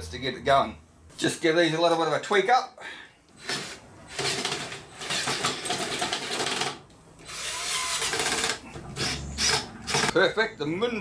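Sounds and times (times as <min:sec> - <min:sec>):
cordless drill running in bursts: 0:07.3 - 0:10.1.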